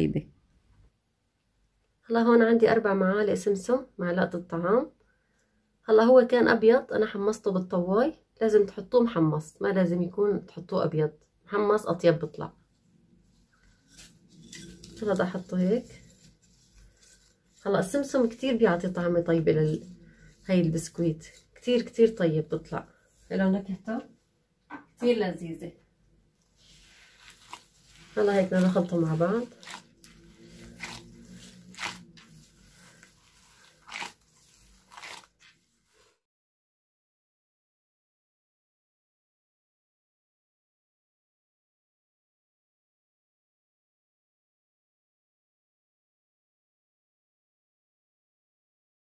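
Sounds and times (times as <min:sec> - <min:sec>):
hands squishing dough: 0:26.6 - 0:35.5.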